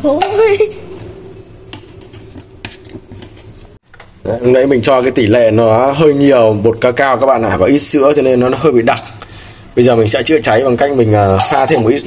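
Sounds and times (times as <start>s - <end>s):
spoon stirring thick mixture: 1.7s - 3.9s.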